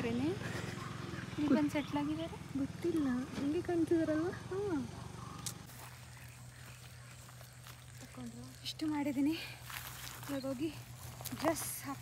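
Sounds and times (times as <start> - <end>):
footsteps rustling dry grass: 5.6 - 12.0.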